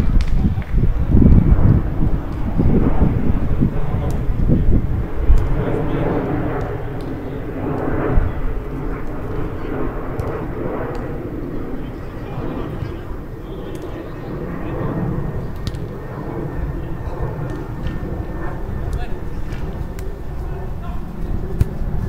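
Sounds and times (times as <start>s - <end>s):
distant players' voices: 0.0s - 22.0s
steady low rumble: 0.0s - 22.0s.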